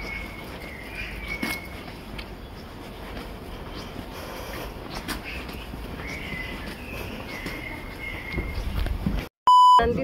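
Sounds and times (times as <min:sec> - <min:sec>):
short electronic beep: 0:09.5 - 0:09.9.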